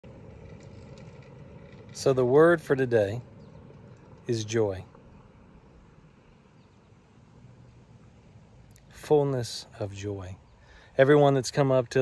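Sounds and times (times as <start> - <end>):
low rumble: 0.0 - 10.9.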